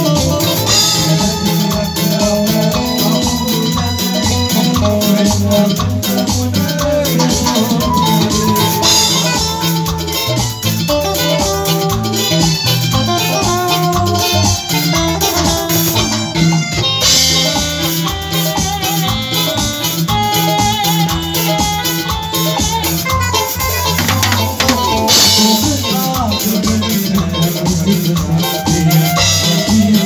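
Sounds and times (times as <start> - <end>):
live band playing dance music: 0.0 - 30.0.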